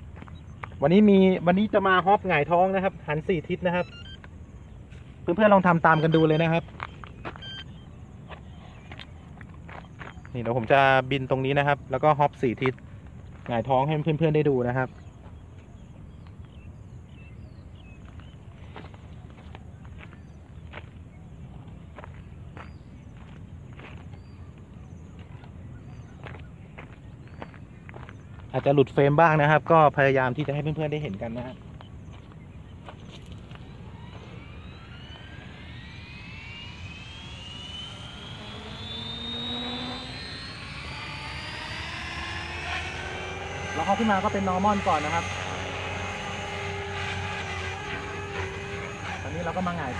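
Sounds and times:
rc helicopter motor and rotor whine: 0:00.0 - 0:11.6, 0:30.4 - 0:49.9
steady low rumble: 0:31.6 - 0:49.9.

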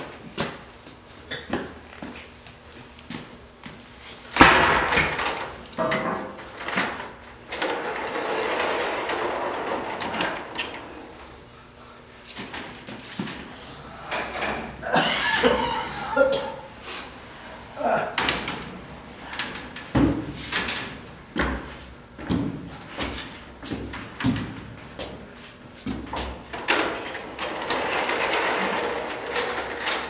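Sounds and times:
elevator door banging: 0:04.4 - 0:11.2, 0:26.3 - 0:30.0
elevator gate sliding: 0:04.8 - 0:11.3, 0:26.4 - 0:30.0.

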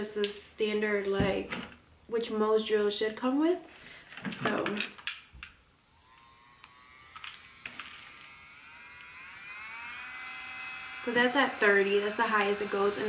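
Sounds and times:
nail drill motor whine rising: 0:05.5 - 0:13.0.

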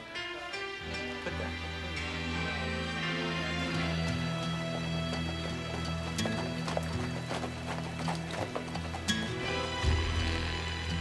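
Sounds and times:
horse hooves clip-clopping on dirt: 0:03.7 - 0:11.0.

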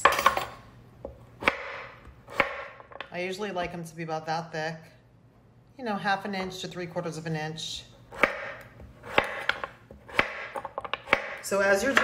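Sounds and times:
knife slicing squash: 0:08.1 - 0:12.0.

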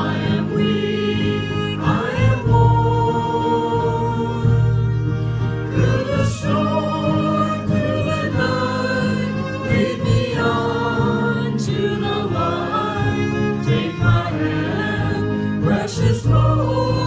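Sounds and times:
acoustic guitar: 0:00.0 - 0:17.0
violin: 0:00.0 - 0:17.0
voices singing together: 0:00.0 - 0:17.0.

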